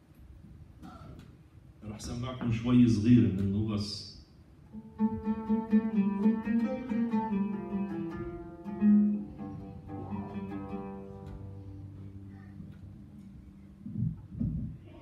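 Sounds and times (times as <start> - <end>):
oud plucked with plectrum: 4.7 - 14.6.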